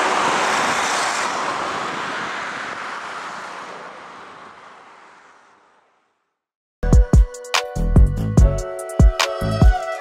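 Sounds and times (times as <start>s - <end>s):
cars and motorbikes passing: 0.0s - 6.4s.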